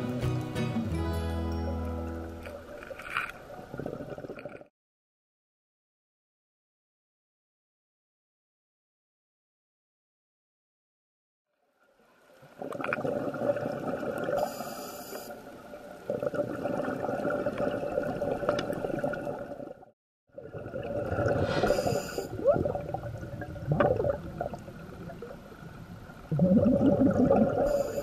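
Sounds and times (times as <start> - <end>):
bubbles gurgling: 3.4 - 4.7, 12.5 - 14.5, 15.5 - 28.0
scuba breathing through regulator: 21.2 - 22.4.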